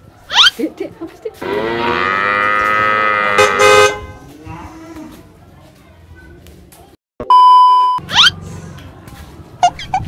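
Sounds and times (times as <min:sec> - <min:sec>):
cow mooing: 0:01.4 - 0:03.7.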